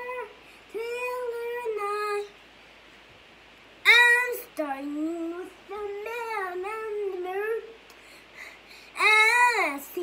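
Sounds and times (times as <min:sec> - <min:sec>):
boy singing: 0:00.0 - 0:02.4, 0:03.8 - 0:07.8, 0:08.8 - 0:10.0.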